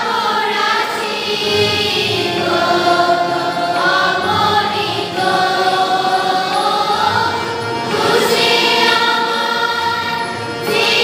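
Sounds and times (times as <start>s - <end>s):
choir singing slow sacred song: 0.0s - 11.0s.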